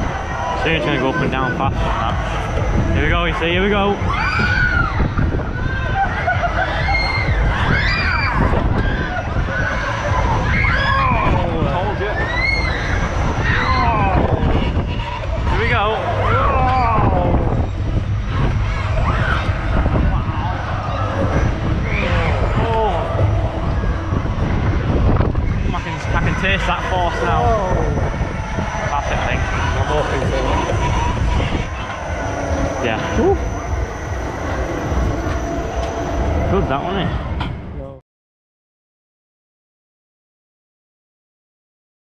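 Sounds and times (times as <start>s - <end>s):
low rumble of moving ride: 0.0s - 38.0s
wind on microphone: 0.0s - 38.0s
riders whooping and shouting: 3.7s - 34.8s.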